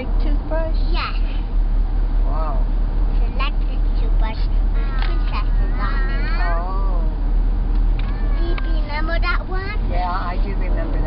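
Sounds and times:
car interior rumble: 0:00.0 - 0:11.0
young child speaking: 0:00.8 - 0:01.5, 0:03.2 - 0:07.0, 0:08.0 - 0:10.3.

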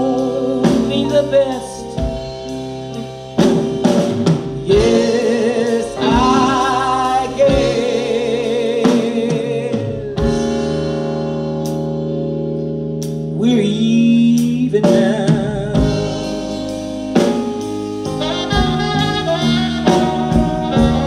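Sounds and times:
soul blues band playing: 0:00.0 - 0:21.0
woman singing with vibrato: 0:04.6 - 0:10.5.

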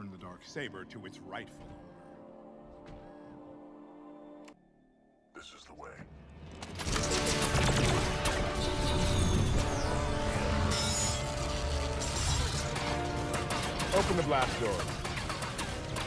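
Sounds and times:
dramatic orchestral score: 0:05.4 - 0:16.0
clanking crashing battle effects: 0:06.4 - 0:16.0.

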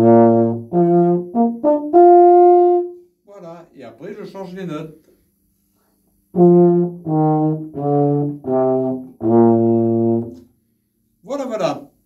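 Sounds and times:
tuba notes: 0:00.0 - 0:03.5, 0:06.3 - 0:10.5.

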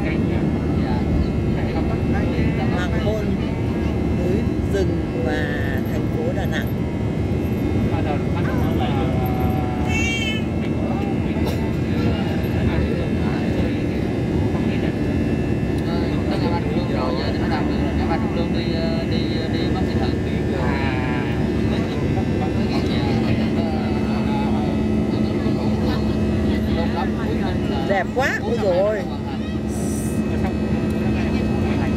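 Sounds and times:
jet engines in cabin: 0:00.0 - 0:31.9
low steady hum: 0:00.0 - 0:31.9.

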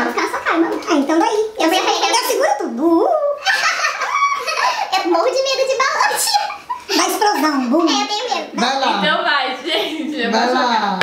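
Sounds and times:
women laughing and chattering: 0:03.2 - 0:08.2, 0:09.4 - 0:10.4.

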